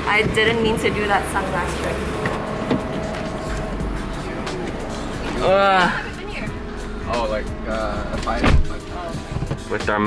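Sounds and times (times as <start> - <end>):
low rumble: 0.0 - 8.2
background music: 0.0 - 10.0.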